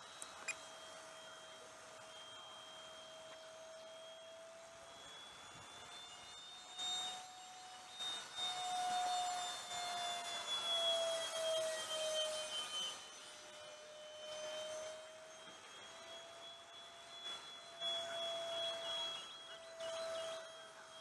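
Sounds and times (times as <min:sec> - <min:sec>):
rc jet fan whine overhead: 0:00.0 - 0:21.0.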